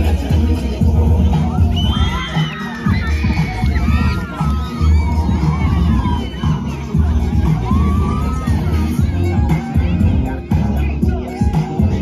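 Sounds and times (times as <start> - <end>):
music with heavy bass beat: 0.0 - 12.0
children cheering and shouting: 1.2 - 12.0.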